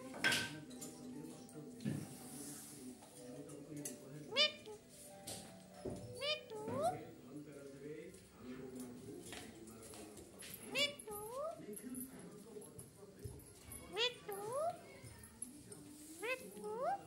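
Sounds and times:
parakeet calling: 4.3 - 4.9, 6.1 - 7.1, 10.7 - 11.5, 13.9 - 14.8, 16.2 - 17.0.

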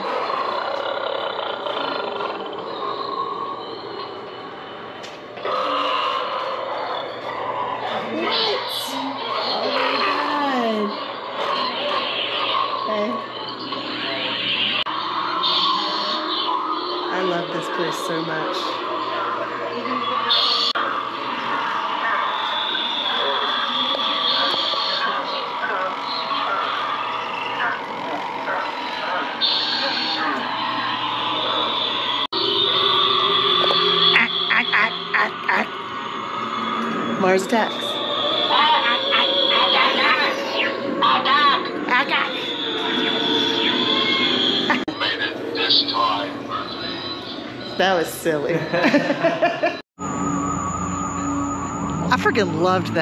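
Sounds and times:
voice-like sounds: 7.7 - 22.4, 23.1 - 31.9, 33.6 - 35.8
low hum: 50.0 - 53.0.

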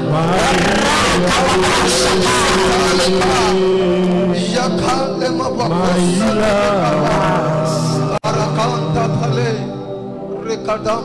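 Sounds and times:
held keyboard chords: 0.0 - 11.0
man speaking over microphone: 0.0 - 11.0.

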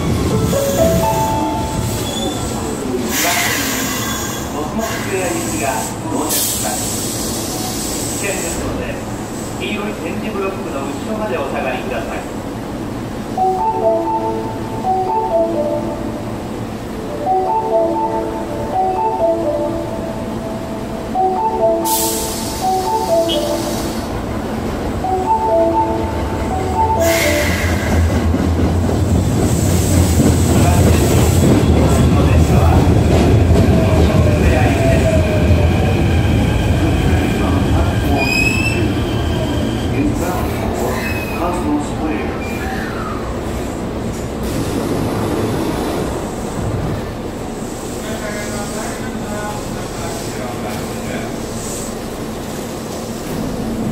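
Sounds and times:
platform chime melody: 0.5 - 1.9, 13.4 - 24.0, 25.0 - 27.8
train running rumble: 21.9 - 53.9.

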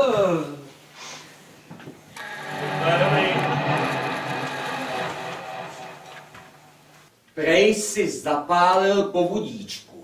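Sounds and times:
sustained chord of tones: 2.2 - 7.1.

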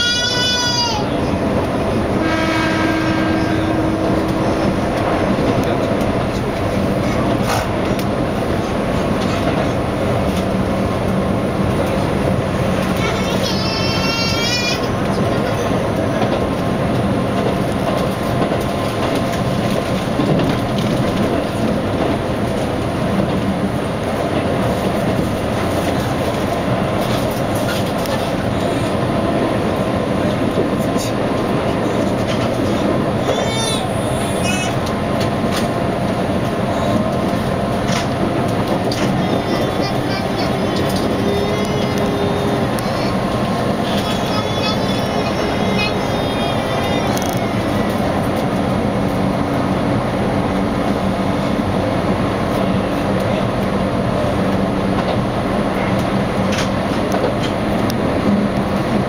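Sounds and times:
train wheels rumbling on rails: 0.0 - 59.0
steady horn-like tone: 2.2 - 4.8.

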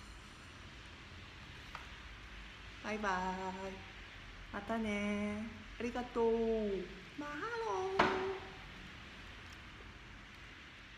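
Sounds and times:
faint background hiss: 0.0 - 10.9
woman saying farewell word: 4.6 - 8.6.

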